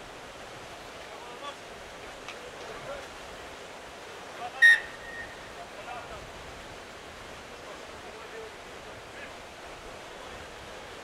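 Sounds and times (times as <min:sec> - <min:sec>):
outdoor background hiss: 0:00.0 - 0:11.0
referee's whistle blast: 0:04.6 - 0:05.4.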